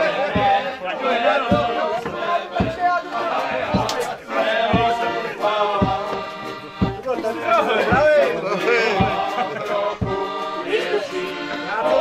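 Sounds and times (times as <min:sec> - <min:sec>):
low thumping beat: 0:00.0 - 0:12.0
men singing together: 0:00.0 - 0:12.0.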